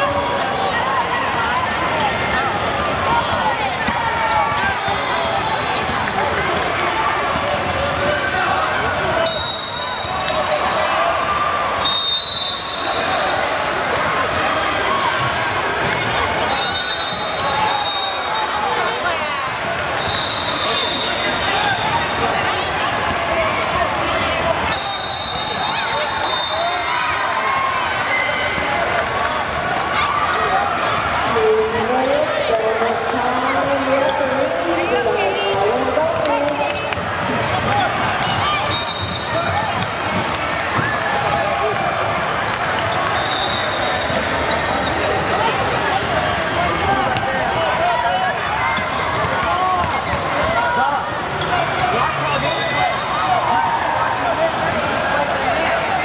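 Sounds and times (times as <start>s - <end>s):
chatter of voices: 0.0s - 11.8s, 12.6s - 24.7s, 25.3s - 56.0s.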